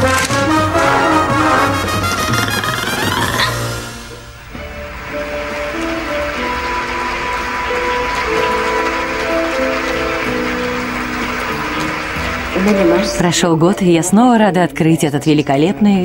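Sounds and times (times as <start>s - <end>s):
slow melody of held notes: 3.6s - 13.4s.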